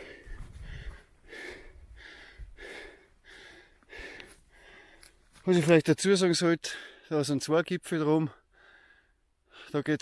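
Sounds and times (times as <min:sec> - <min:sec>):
man breathing hard: 0:00.0 - 0:05.2, 0:08.4 - 0:09.8.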